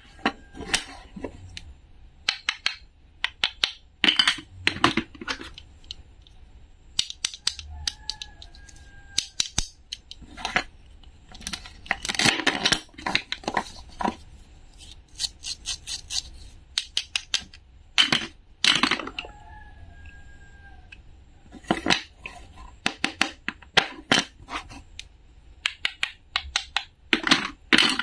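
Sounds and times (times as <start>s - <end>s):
toy clicks and taps on wood: 7.0s - 10.2s, 25.6s - 27.9s.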